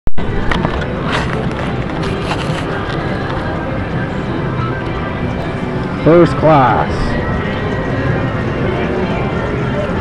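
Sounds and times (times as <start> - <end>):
camera handling rumble: 0.5 - 3.6.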